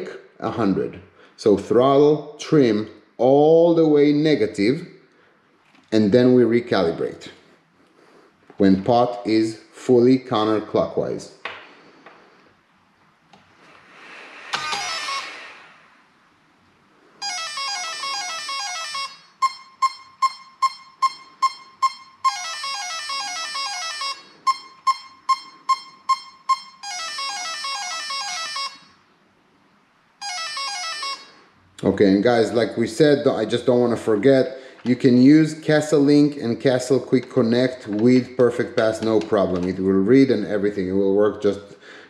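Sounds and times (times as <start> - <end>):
rising rush of noise: 13.6 - 16.3
melodic motor beep sequences: 17.2 - 29.0, 30.2 - 31.4.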